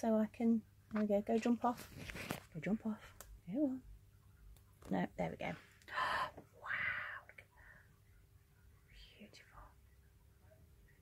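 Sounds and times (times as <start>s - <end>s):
person whispering: 5.9s - 7.5s, 8.9s - 9.8s.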